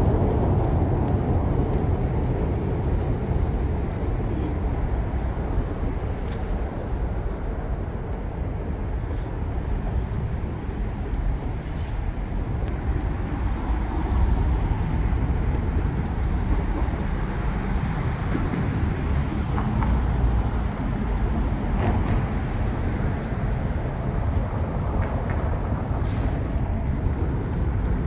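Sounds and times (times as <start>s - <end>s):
road traffic rumble: 0.0s - 28.0s.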